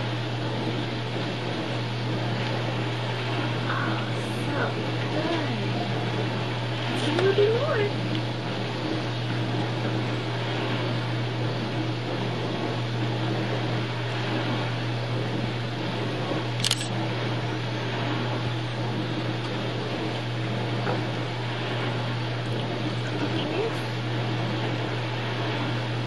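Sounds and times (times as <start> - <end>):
tape mechanism hum and hiss: 0.0 - 26.0
sharp click: 16.6 - 16.9.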